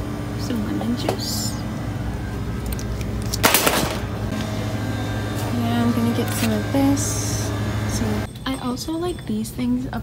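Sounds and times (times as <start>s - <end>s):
steady store hum: 0.0s - 10.0s.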